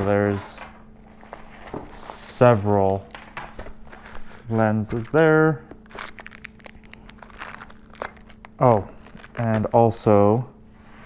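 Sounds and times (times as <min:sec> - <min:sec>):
hands rummaging through small items: 0:00.0 - 0:09.8.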